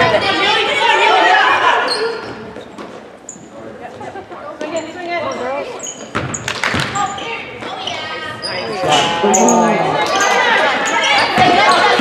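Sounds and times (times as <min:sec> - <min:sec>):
sneaker squeaks on hardwood floor: 0:04.6 - 0:09.7, 0:11.0 - 0:12.0
spectators calling out: 0:08.7 - 0:10.9.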